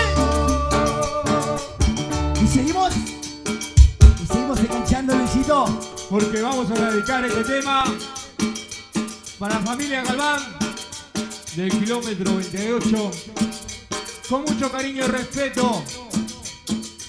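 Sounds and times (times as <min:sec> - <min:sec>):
dance band playing: 0:00.0 - 0:16.7
snare and bass drum beat: 0:03.7 - 0:08.4
sliding melody line: 0:04.0 - 0:08.7.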